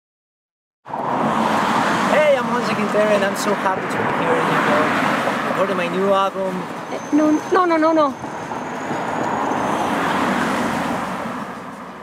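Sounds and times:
road traffic noise: 0:00.8 - 0:12.0.

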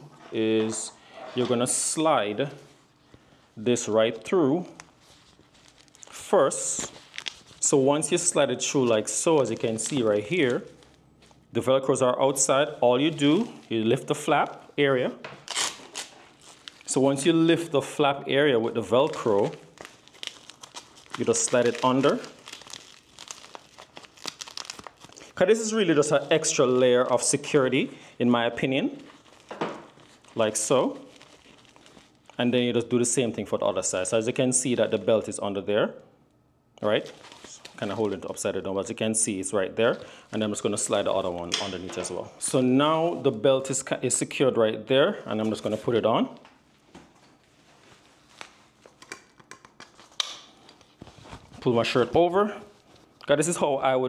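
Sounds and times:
soft nylon rustling: 0:00.3 - 0:11.6, 0:15.4 - 0:17.4, 0:18.7 - 0:32.6, 0:36.9 - 0:38.6, 0:45.3 - 0:53.6
belt webbing and velcro rustling: 0:15.4 - 0:16.9, 0:19.0 - 0:27.4, 0:47.3 - 0:51.6.

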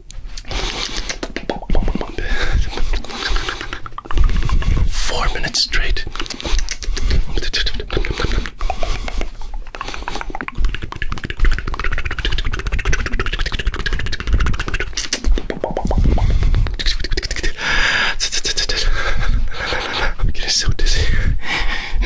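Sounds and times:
wet mouth clicks and pops: 0:00.3 - 0:05.0, 0:06.1 - 0:17.6
low rumble: 0:15.8 - 0:16.9.

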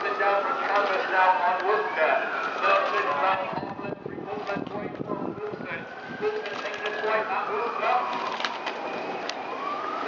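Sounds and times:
distant siren wailing: 0:00.0 - 0:10.0.

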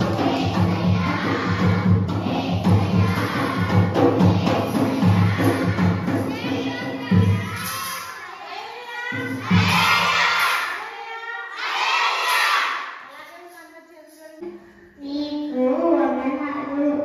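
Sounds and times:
children shouting together: 0:06.6 - 0:13.0.

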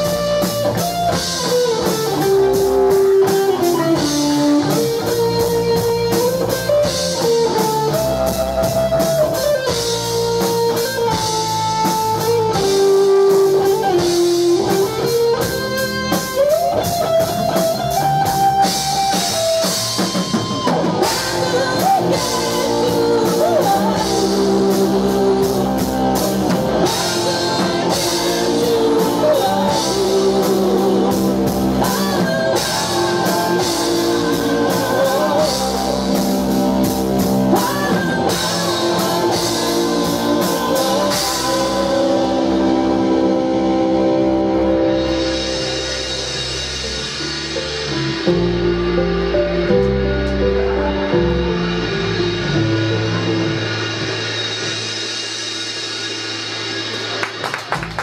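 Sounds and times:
bass and drums: 0:00.0 - 0:58.0
electric guitar melody: 0:00.0 - 0:58.0
woman singing lead vocal: 0:21.1 - 0:26.1, 0:26.7 - 0:36.5, 0:37.3 - 0:43.3.

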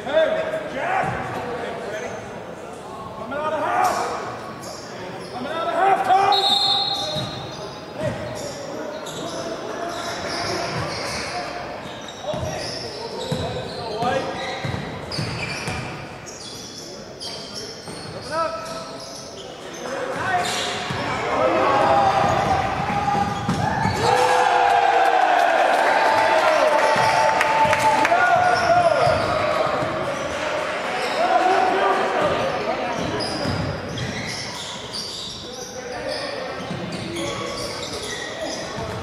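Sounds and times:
people shouting: 0:21.2 - 0:29.0
basketball bouncing on hardwood: 0:22.2 - 0:24.0.

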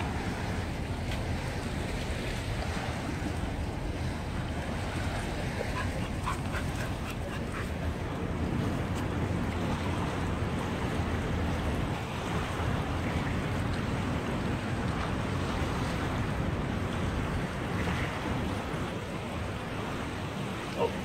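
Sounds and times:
waves washing onto shore: 0:00.0 - 0:21.0.

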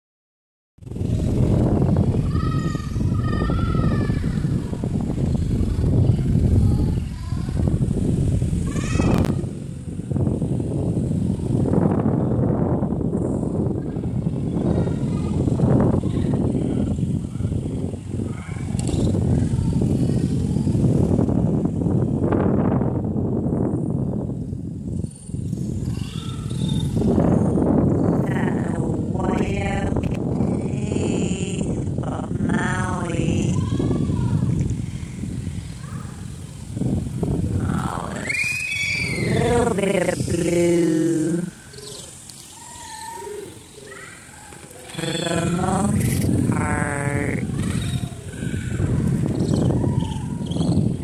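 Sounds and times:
wind rumble on microphone: 0:00.8 - 0:51.0.

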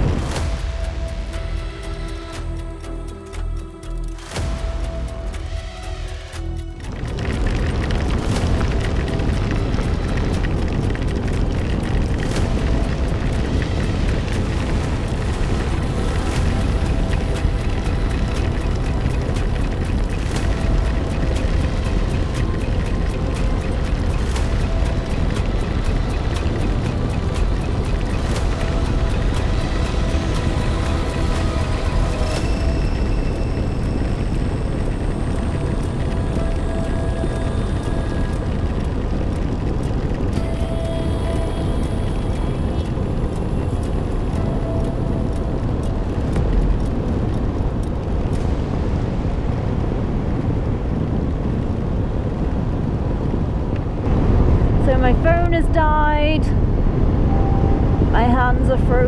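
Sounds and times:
background music: 0:00.0 - 0:59.0
wind buffeting microphone: 0:06.8 - 0:59.0.

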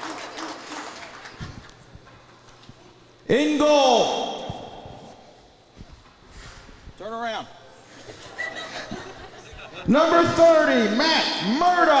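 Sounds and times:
announcer voice echoing in arena: 0:03.3 - 0:05.2, 0:09.9 - 0:12.0.

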